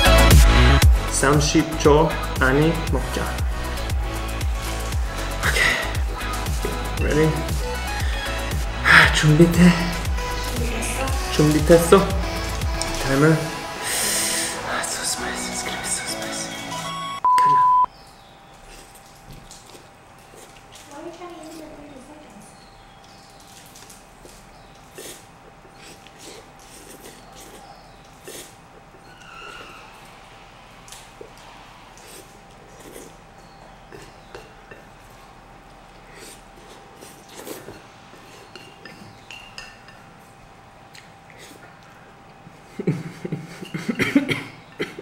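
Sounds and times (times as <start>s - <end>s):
man slurping and chewing noodles: 3.3s - 10.6s, 18.5s - 20.9s, 23.1s - 39.3s
electronic beep: 16.7s - 17.9s
chopsticks scraping ceramic bowl: 36.6s - 40.0s.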